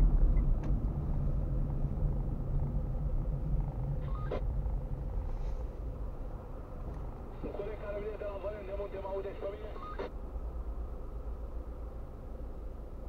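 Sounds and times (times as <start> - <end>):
car engine and road noise: 0.0 - 13.0.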